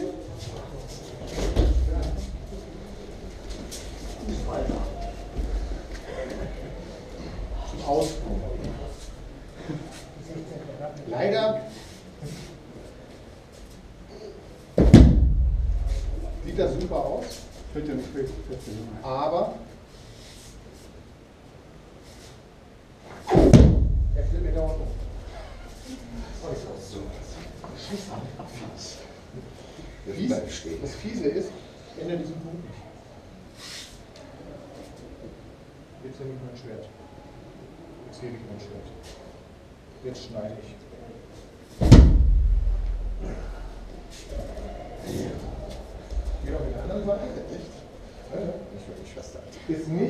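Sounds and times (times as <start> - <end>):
body landing on training mat: 14.8 - 16.8, 23.3 - 25.3, 41.8 - 43.9
low boom: 14.8 - 17.2, 23.4 - 25.7, 41.8 - 44.0.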